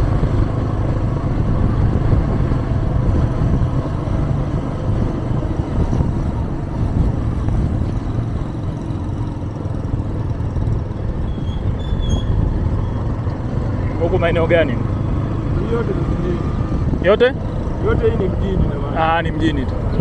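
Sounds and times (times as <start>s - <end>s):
car engine rumbling: 0.0s - 20.0s
tyre noise on road: 0.0s - 20.0s.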